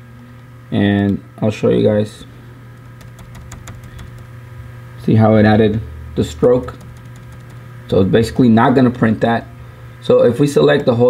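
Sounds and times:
steady low hum: 0.0s - 11.0s
laptop key clicks: 2.8s - 4.3s.

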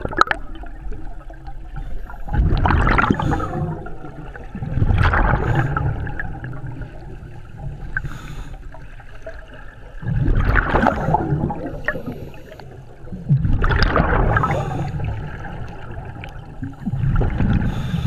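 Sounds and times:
underwater breath bubbling: 0.0s - 18.0s.

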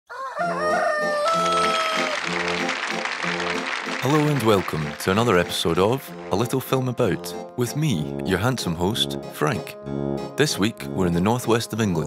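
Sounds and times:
rooster crowing: 0.1s - 2.2s
music with repeating low figure: 2.2s - 12.0s.

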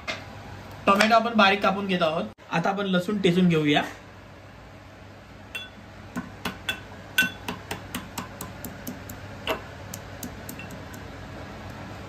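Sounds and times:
pestle pounding in steel mortar: 6.2s - 10.9s.

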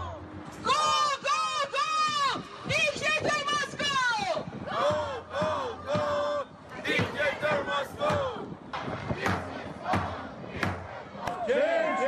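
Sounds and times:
crowd noise: 0.0s - 12.0s
crowd chanting in unison: 4.5s - 12.0s.

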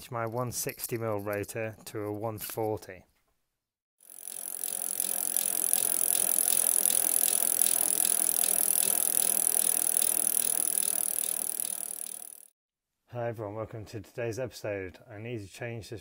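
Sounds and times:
spinning bicycle wheel ticking: 4.0s - 12.5s.

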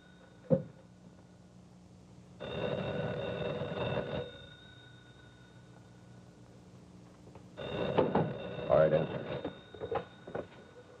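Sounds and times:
telephone bell ringing: 2.4s - 5.8s, 7.6s - 11.0s.

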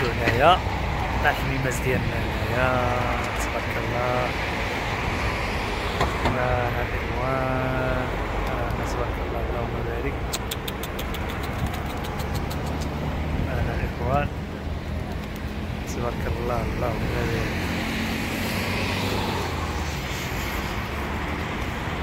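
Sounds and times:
man's voice: 0.0s - 0.6s, 1.2s - 4.4s, 6.3s - 10.2s, 15.9s - 17.6s
city traffic rumble: 0.0s - 22.0s
faint rapid clicks: 10.3s - 13.0s, 15.1s - 15.6s.

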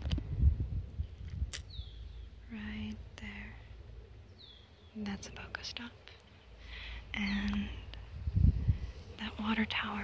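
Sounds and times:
wind buffeting microphone: 0.0s - 2.4s, 7.1s - 10.0s.

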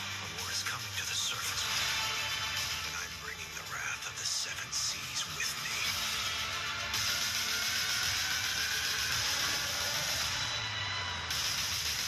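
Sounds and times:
trailer music: 0.0s - 12.0s.

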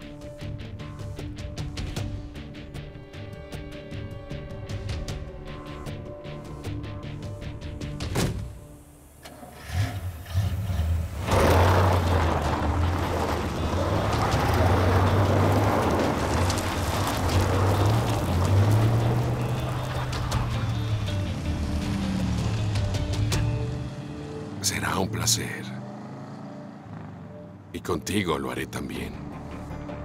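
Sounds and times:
background music: 0.0s - 30.0s
motor vehicle running: 8.6s - 30.0s.

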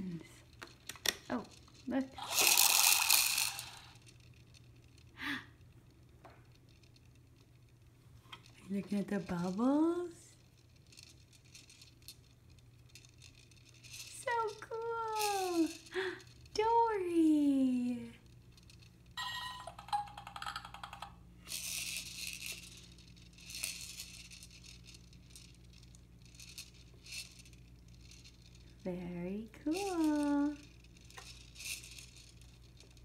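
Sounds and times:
plastic toys rattling: 0.0s - 33.0s.

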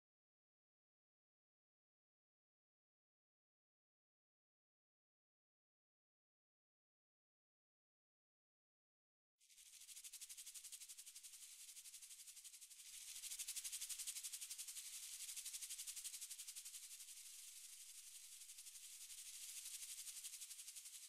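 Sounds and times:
faint shaker-like rattle: 9.4s - 21.0s.

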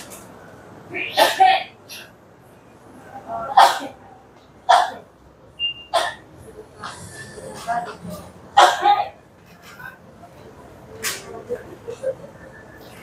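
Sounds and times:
person's voice in sharp outbursts: 0.9s - 1.8s
high beep: 5.6s - 6.0s.

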